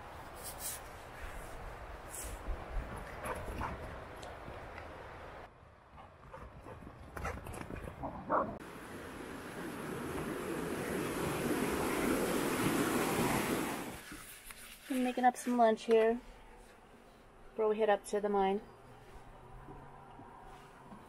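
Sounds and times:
steady rushing noise: 8.6s - 14.0s.

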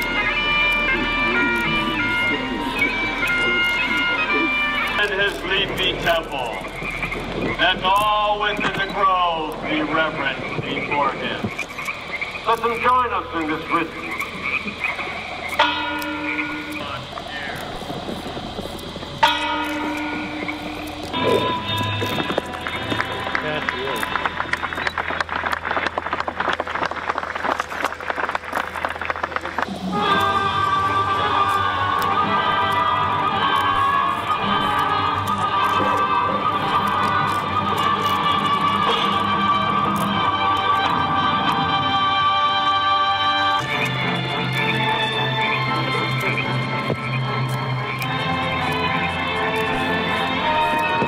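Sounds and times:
distant voices: 0.0s - 51.0s
frogs croaking in chorus: 0.0s - 51.0s
held musical tones: 0.0s - 51.0s
music with sustained chords: 0.0s - 51.0s.

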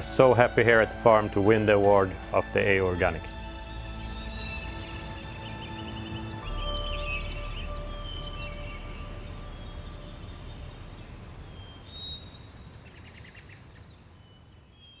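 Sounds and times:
background music: 0.0s - 12.2s
outdoor background noise: 0.0s - 15.0s
small birds chirping: 3.4s - 15.0s.

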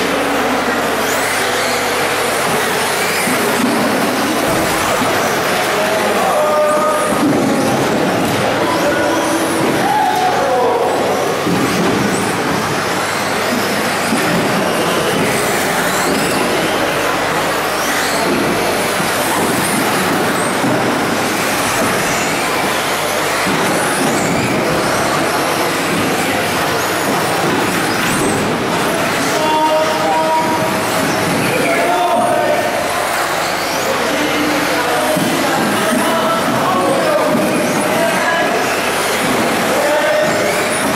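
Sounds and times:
small motors gears and tyres din: 0.0s - 40.9s
rc car motors whining: 0.1s - 40.9s.

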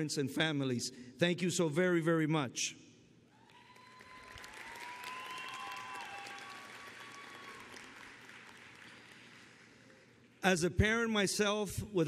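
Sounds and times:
audience applauding: 3.5s - 10.3s.

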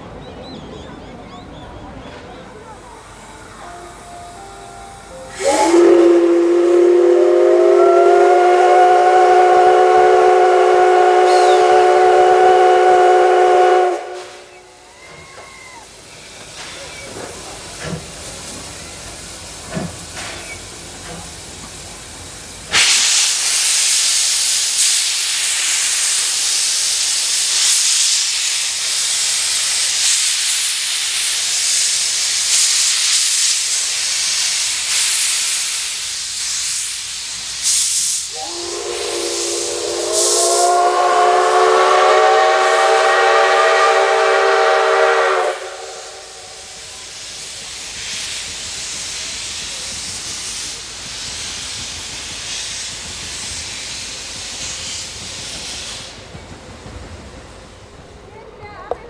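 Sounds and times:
steam locomotive hissing: 2.0s - 59.0s
steam whistle blast: 5.2s - 15.8s, 37.6s - 47.2s.

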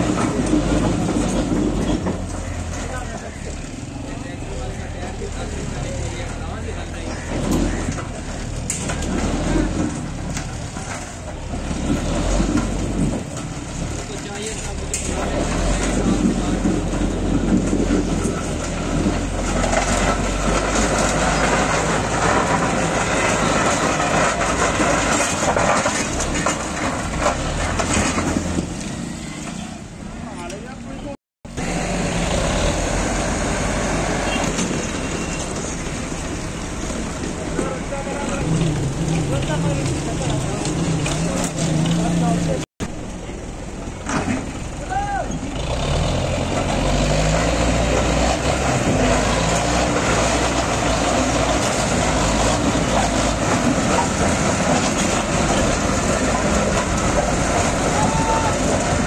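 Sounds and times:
people talking: 0.0s - 9.9s, 13.9s - 18.1s, 30.2s - 31.2s, 37.4s - 45.5s, 55.5s - 59.0s
tractor diesel engines running: 0.0s - 59.0s.

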